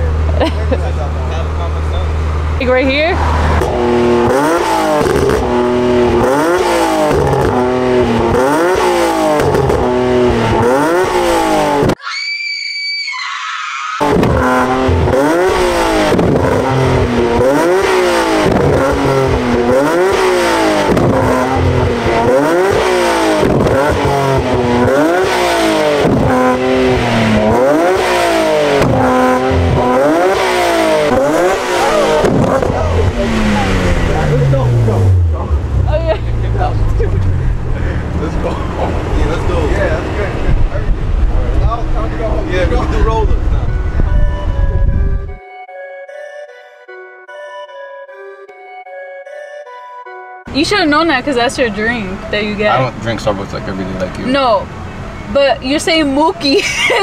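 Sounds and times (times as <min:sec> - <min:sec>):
car engine revving: 0:00.0 - 0:12.0, 0:14.0 - 0:45.4, 0:50.5 - 0:57.0
high steady tone: 0:42.7 - 0:53.0.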